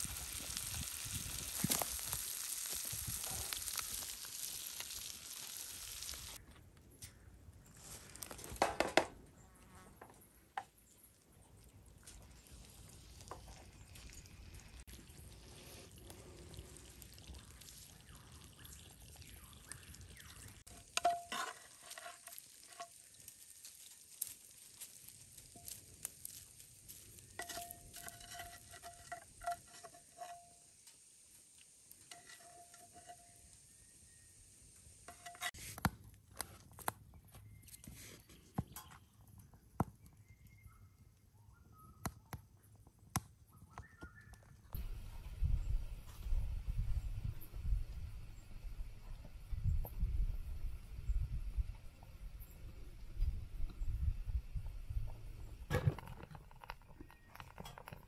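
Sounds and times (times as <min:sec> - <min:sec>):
butter sizzling in a pan: 0:00.0 - 0:06.4, 0:12.4 - 0:35.5
whistled bird calls: 0:40.2 - 0:42.3, 0:43.5 - 0:44.6.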